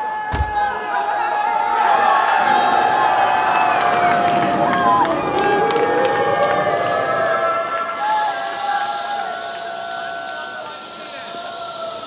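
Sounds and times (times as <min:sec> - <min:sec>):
group cheering and shouting: 0:00.0 - 0:12.0
long drawn-out yells: 0:00.0 - 0:12.0.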